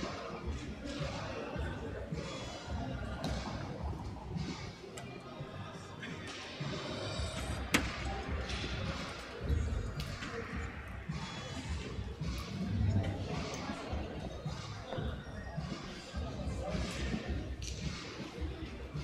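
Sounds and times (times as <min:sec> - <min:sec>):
background music: 0:00.0 - 0:19.0
indistinct crowd chatter: 0:00.0 - 0:19.0.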